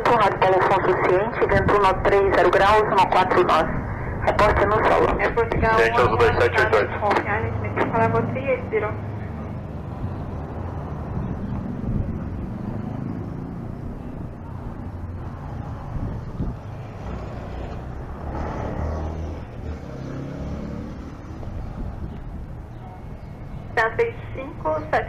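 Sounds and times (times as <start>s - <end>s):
car and motorcycle engines running: 0.1s - 25.0s.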